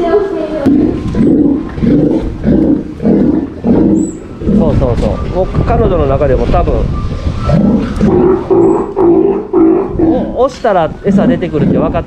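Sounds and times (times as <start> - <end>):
baby sea lion bawling: 7.5 - 10.4.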